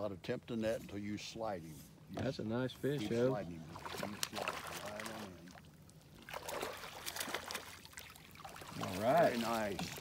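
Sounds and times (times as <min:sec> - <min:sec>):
fish splashing in water: 0:03.7 - 0:05.6, 0:06.2 - 0:10.0.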